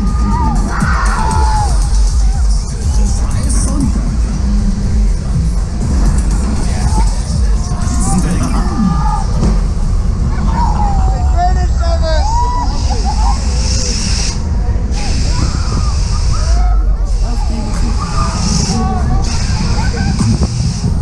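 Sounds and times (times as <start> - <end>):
music: 0.0 - 11.2, 17.5 - 21.0
fairground ride rumbling: 0.0 - 21.0
voices calling out: 0.0 - 21.0.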